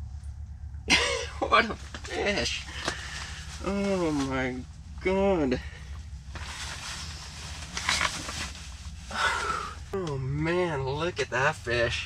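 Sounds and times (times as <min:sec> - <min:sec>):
steady low hum: 0:00.0 - 0:12.0
rustling snow pants and chair: 0:02.0 - 0:04.6, 0:06.4 - 0:09.7.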